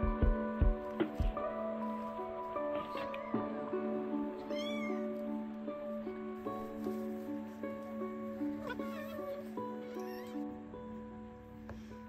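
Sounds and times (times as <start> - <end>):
background music: 0.0 - 12.0
kitten mewing: 4.4 - 5.1, 8.6 - 10.5.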